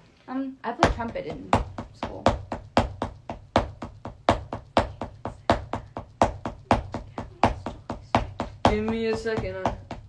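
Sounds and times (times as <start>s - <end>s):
drumsticks playing a steady beat: 0.8s - 10.0s.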